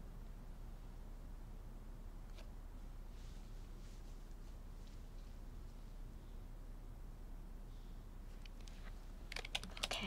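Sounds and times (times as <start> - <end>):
typing on laptop keyboard: 8.4 - 10.0.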